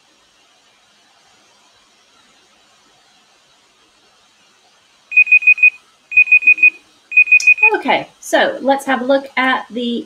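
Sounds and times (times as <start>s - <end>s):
high-pitched timer beeps: 5.1s - 7.8s.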